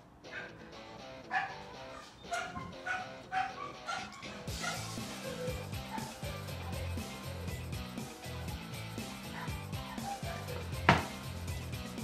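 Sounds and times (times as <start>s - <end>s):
background music: 0.0s - 12.0s
dog barking: 0.3s - 0.6s, 1.3s - 6.6s, 9.3s - 10.7s.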